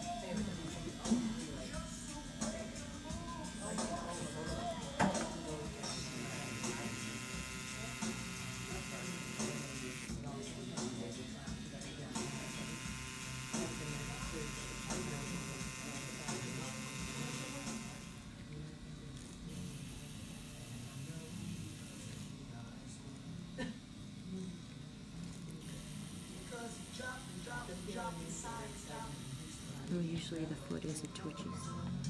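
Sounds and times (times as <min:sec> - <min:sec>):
tattoo machine buzzing: 0:00.0 - 0:30.1
low voices: 0:00.0 - 0:32.0.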